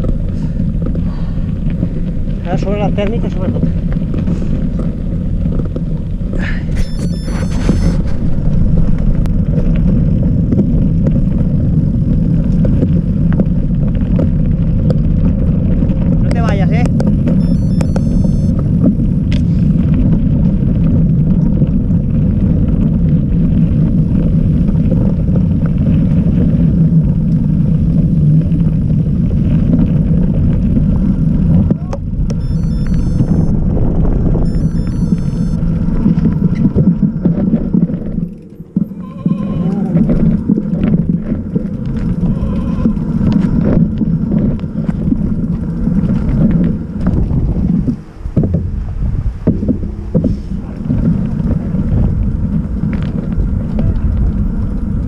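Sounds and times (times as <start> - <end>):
bike tyres rumbling over gravel: 0.0 - 6.8, 7.6 - 17.4, 18.5 - 32.4, 33.5 - 34.5, 35.6 - 55.0
wind buffeting microphone: 0.0 - 17.4, 18.5 - 34.7, 35.5 - 55.0.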